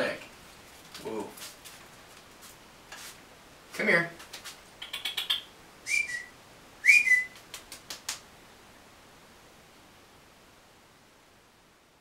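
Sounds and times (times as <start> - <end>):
faint room hiss: 0.0 - 12.0
short whistled calls: 4.8 - 7.5.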